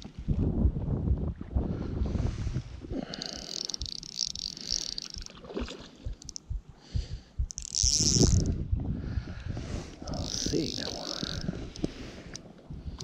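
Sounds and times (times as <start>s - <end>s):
fishing reel whirring: 3.1s - 5.4s, 6.2s - 6.5s, 7.5s - 8.6s, 10.0s - 11.9s.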